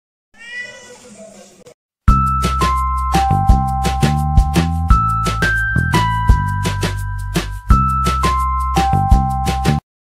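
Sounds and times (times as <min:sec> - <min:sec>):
cat meowing: 0:00.4 - 0:01.5.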